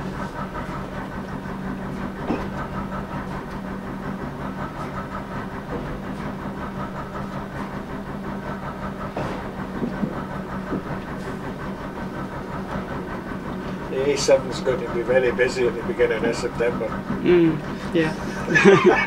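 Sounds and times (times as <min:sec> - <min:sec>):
train engine humming: 0:00.0 - 0:19.0
wheels clicking on track: 0:00.0 - 0:19.0.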